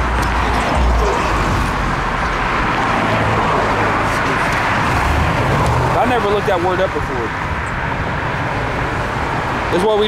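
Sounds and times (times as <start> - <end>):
road traffic rush: 0.0 - 10.0.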